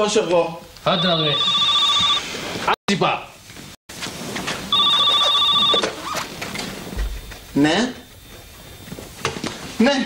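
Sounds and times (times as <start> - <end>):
desk telephone ringing: 0.9 - 2.3, 4.7 - 6.1.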